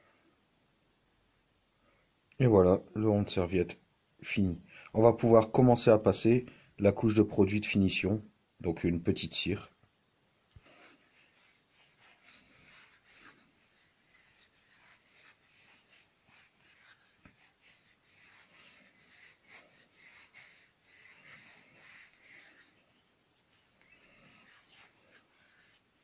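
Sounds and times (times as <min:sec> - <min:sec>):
hand rubbing wax into wood: 0:10.5 - 0:26.0.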